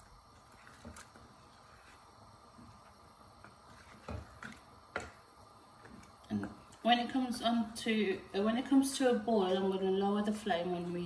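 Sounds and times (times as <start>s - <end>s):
spatula stirring curry in pot: 3.4s - 5.1s.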